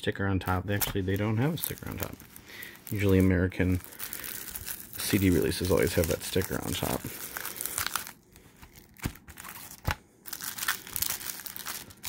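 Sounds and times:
cellophane wrap crinkling: 0.5 - 12.0.

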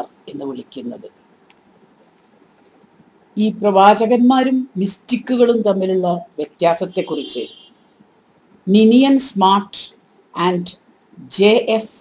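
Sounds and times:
woman talking: 0.0 - 1.1, 3.4 - 7.5, 8.7 - 12.0.

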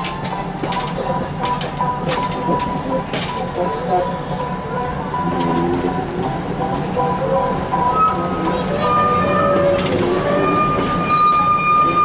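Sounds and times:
train wheels clicking on rails: 0.0 - 3.9, 8.4 - 11.4
train coaches rolling: 0.0 - 12.0.

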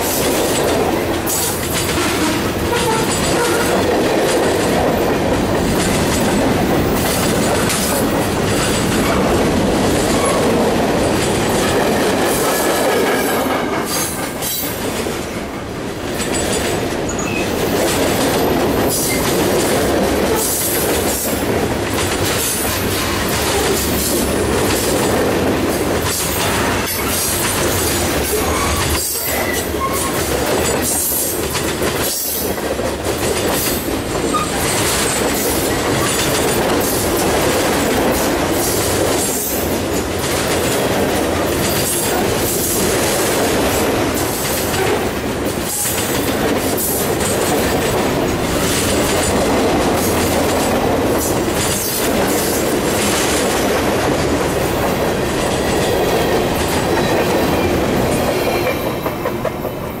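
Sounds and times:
wheels clicking over rail joints: 0.0 - 15.2, 16.0 - 59.7
train wheels rumbling on rail: 0.0 - 60.0.

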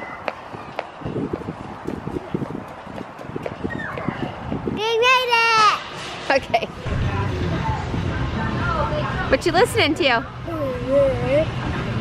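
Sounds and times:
footsteps on concrete sidewalk: 0.0 - 5.8.

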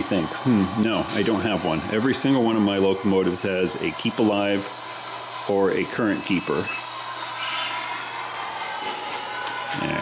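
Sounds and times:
model locomotive humming and whining: 0.0 - 10.0.

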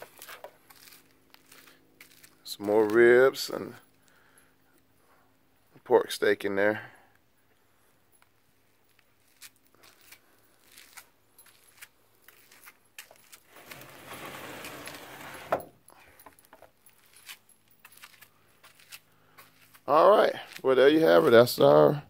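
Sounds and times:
metal drawer sliding shut: 13.6 - 15.7.

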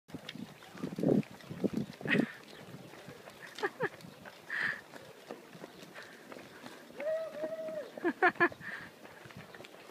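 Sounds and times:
running footsteps on asphalt: 0.1 - 9.9.

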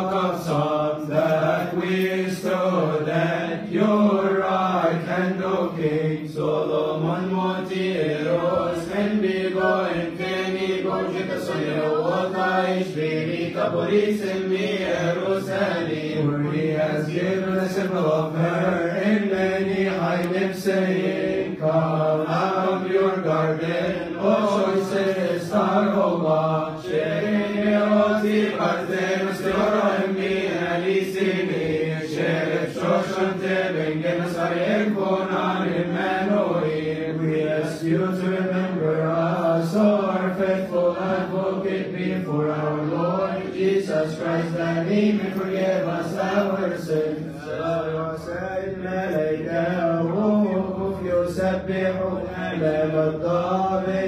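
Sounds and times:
men chanting in unison: 0.0 - 54.0.

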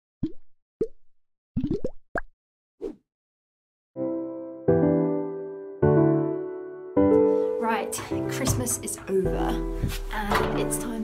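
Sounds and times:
cartoon pops rising in pitch: 0.2 - 1.0, 1.6 - 2.3.

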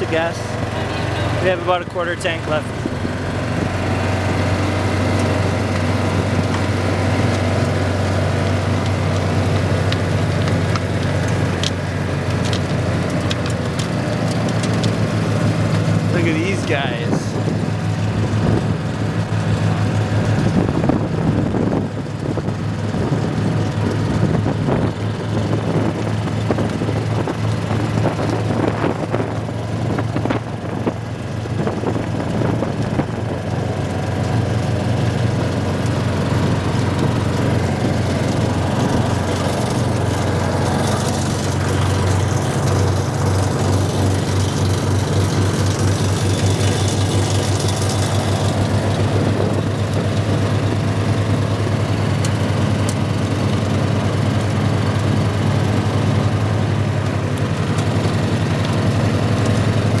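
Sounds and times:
road noise: 0.0 - 60.0
utility vehicle engine running: 0.0 - 60.0.

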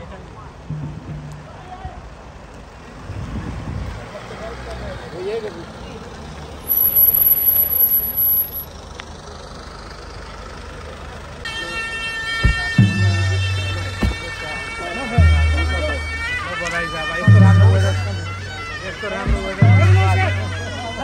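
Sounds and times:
voices close by: 3.8 - 9.9
thin high whistle: 6.6 - 8.7
bagpipes droning: 11.5 - 21.0.

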